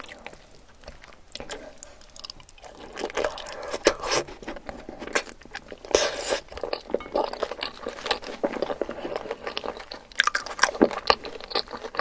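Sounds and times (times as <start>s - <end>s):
wet crunching chewing: 0.0s - 12.0s.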